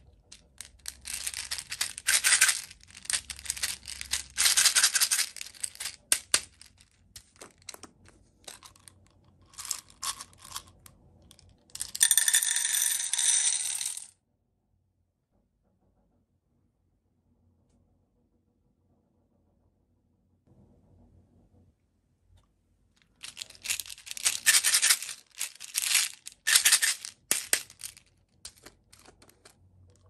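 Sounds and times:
beads rattling in plastic bottle: 0.0s - 10.8s, 11.7s - 14.1s, 23.0s - 30.0s
beads clattering into metal tin: 0.1s - 10.9s, 11.7s - 14.1s, 23.1s - 30.0s.

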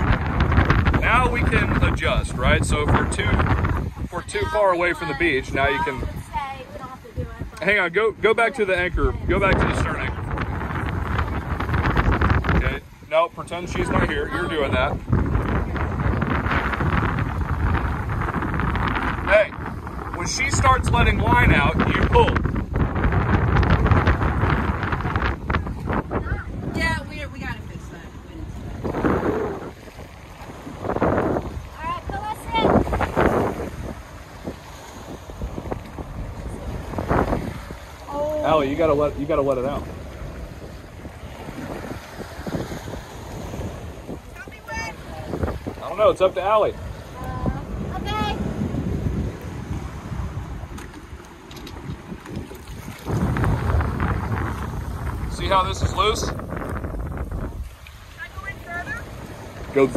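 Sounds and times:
strong wind on microphone: 0.0s - 59.9s.

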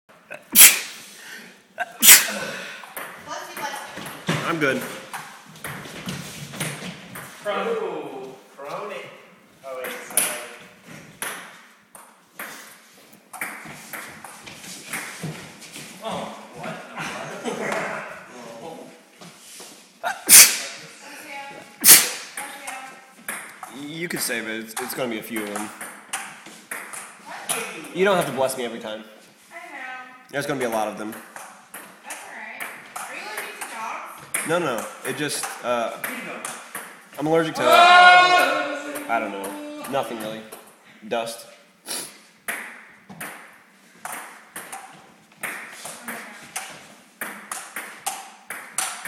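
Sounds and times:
person sneezing: 0.3s - 1.1s, 1.8s - 2.8s, 20.0s - 20.8s, 21.8s - 22.3s, 41.9s - 42.2s
laughter: 16.9s - 18.2s
coughing: 20.0s - 20.5s
ping-pong ball clicks: 42.5s - 49.0s.

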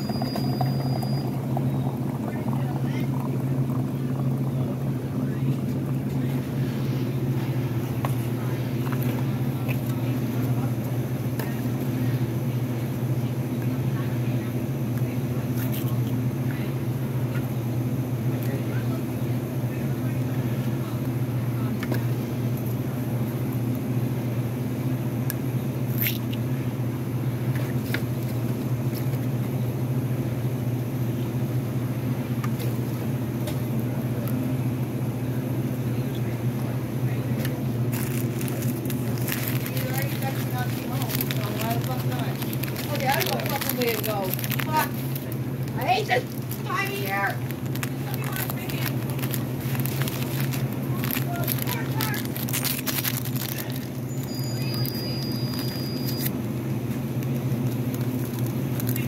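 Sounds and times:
low hum of store equipment: 0.0s - 59.0s.

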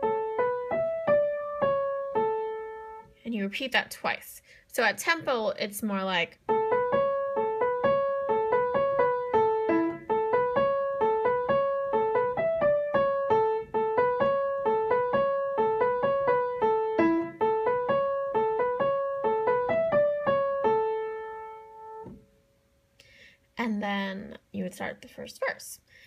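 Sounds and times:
out-of-tune piano riff: 0.0s - 3.1s, 6.5s - 22.2s.

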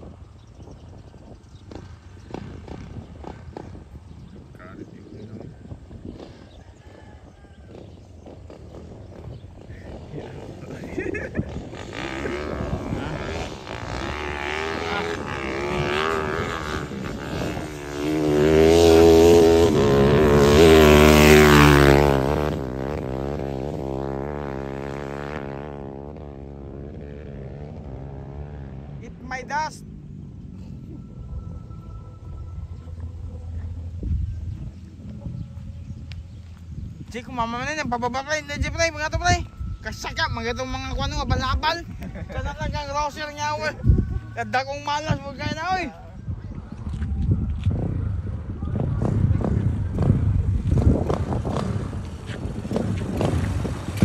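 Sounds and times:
motorcycle passing by: 0.0s - 54.0s.

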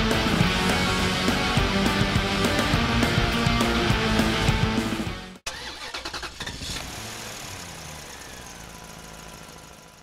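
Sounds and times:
car engine cranking and running: 5.4s - 10.0s.

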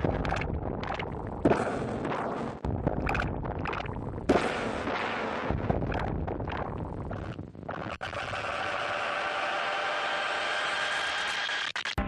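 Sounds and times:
crackling distorted noise: 0.0s - 9.3s, 11.2s - 12.0s.

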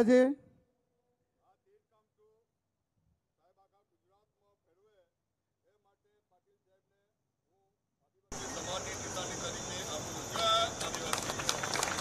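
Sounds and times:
steady hiss: 8.3s - 12.0s
crowd hand clapping: 10.3s - 12.0s.

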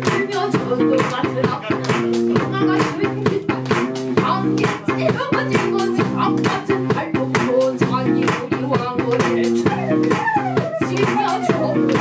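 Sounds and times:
bass guitar riff: 0.0s - 12.0s.

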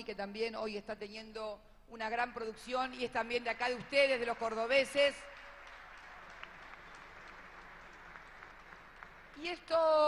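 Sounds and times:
audience applause: 3.2s - 10.0s
sharp individual claps: 5.2s - 9.5s.

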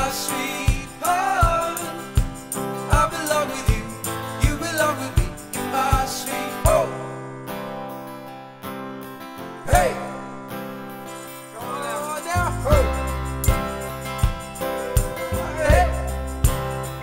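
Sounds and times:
acoustic guitar strumming: 0.0s - 17.0s
deep bass part: 12.5s - 13.7s.

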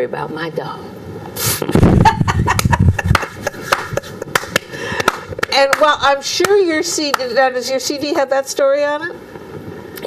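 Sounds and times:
people clapping: 2.5s - 7.3s.

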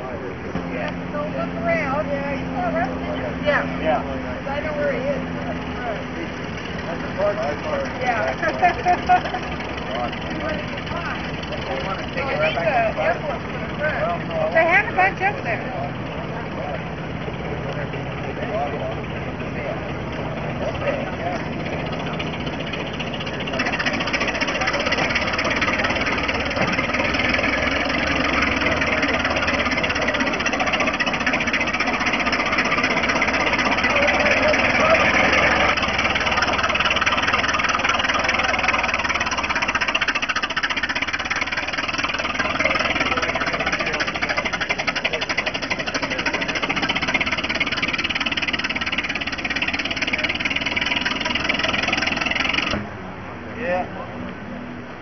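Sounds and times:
truck engine running: 0.0s - 55.0s
voices: 0.0s - 55.0s.

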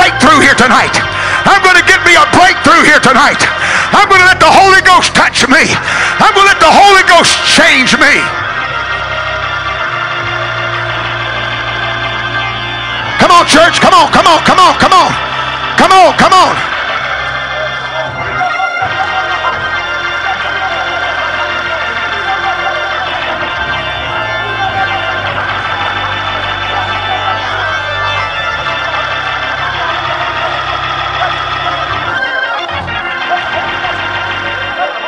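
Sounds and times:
church music sustained chords: 0.0s - 35.0s.

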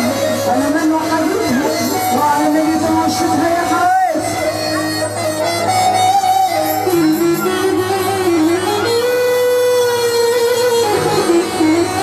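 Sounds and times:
sliding lead melody: 0.0s - 12.0s
steady musical accompaniment: 0.0s - 12.0s.

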